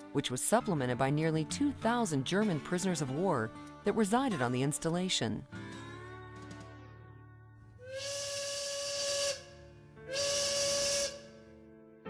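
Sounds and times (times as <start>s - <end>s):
signal whistle blasts: 7.8s - 11.4s.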